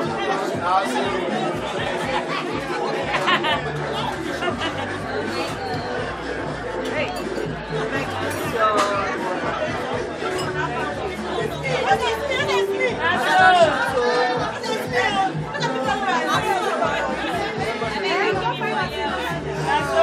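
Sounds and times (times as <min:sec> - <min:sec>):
background music with bass line: 0:00.0 - 0:20.0
guests chattering and calling out: 0:00.0 - 0:20.0.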